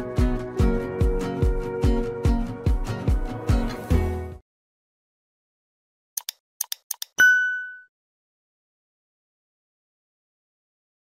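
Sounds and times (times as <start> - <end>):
short clicks: 6.2 - 7.2
bell-like ding: 7.2 - 7.9.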